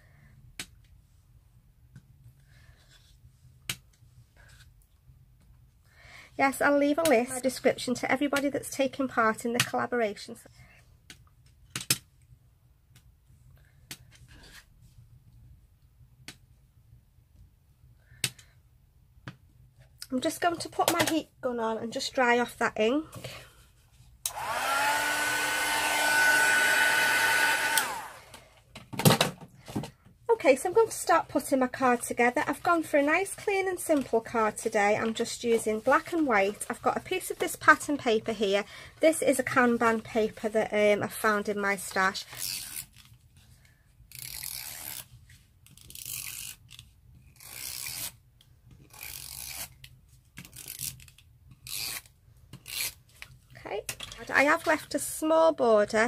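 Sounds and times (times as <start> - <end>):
heat gun motor whine: 24.3 - 28.4.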